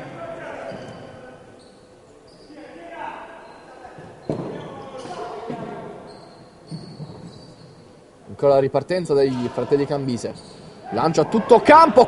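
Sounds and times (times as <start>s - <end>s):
players' voices in hall: 0.0s - 12.0s.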